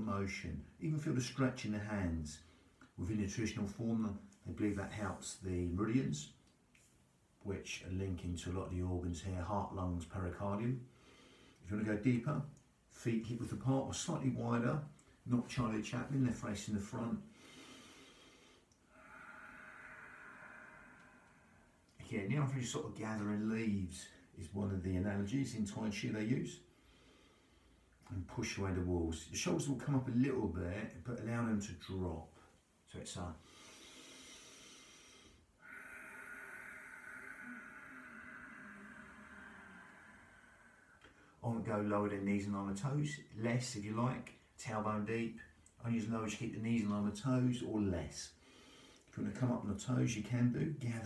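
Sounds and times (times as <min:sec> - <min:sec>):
man breathing in and out: 0:10.8 - 0:11.6, 0:17.2 - 0:22.0, 0:26.6 - 0:28.1, 0:33.4 - 0:41.4, 0:48.3 - 0:49.2
man exhaling slowly: 0:17.3 - 0:22.0, 0:33.4 - 0:41.4.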